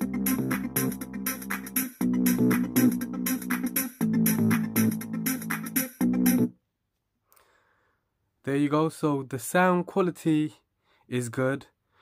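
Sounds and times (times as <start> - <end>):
instrumental music with strong bass: 0.0 - 6.5.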